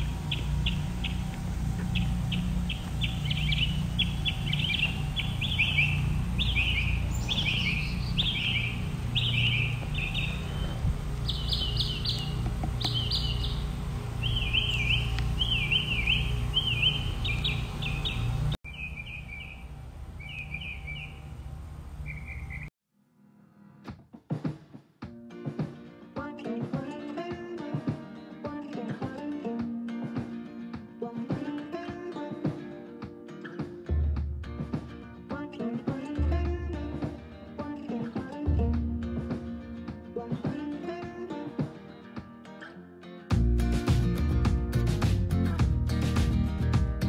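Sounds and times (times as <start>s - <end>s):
songbird chirping: 0.0s - 22.7s
steady low rumble: 0.0s - 22.7s.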